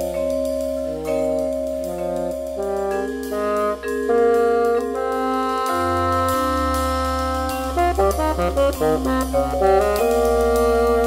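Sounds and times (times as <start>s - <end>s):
small jazz group playing: 0.0s - 11.0s.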